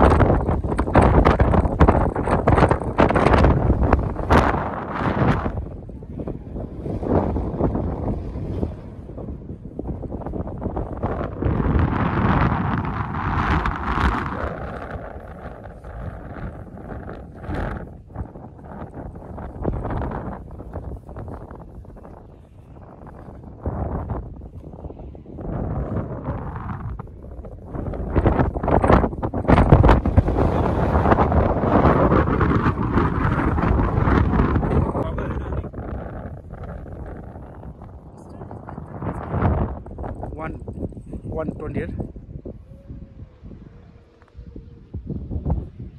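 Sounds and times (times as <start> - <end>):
wind buffeting microphone: 0.0 - 45.9.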